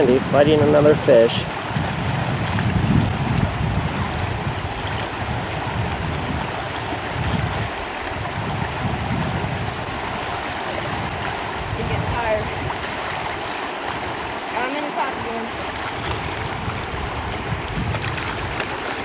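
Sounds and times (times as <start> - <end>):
river rushing: 0.0 - 19.0
wind buffeting microphone: 0.0 - 19.0.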